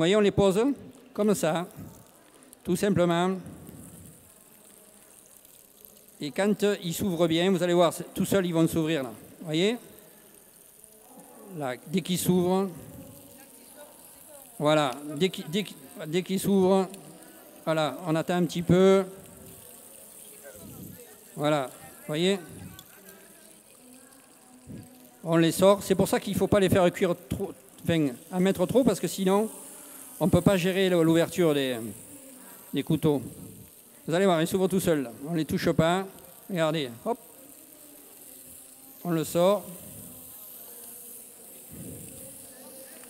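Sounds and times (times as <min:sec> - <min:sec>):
clams sizzling in oil: 0:00.0 - 0:43.0
faint voices: 0:00.8 - 0:43.0.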